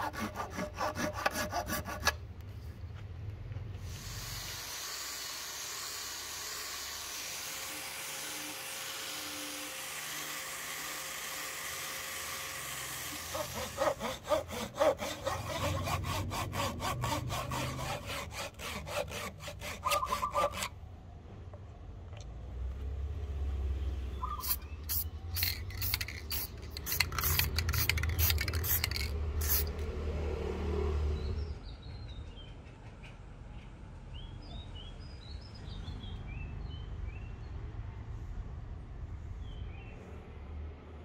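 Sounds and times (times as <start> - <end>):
angle grinder sanding wood: 0.0 - 2.1, 4.0 - 20.7
hand saw cutting wood: 0.0 - 2.2, 3.8 - 20.8.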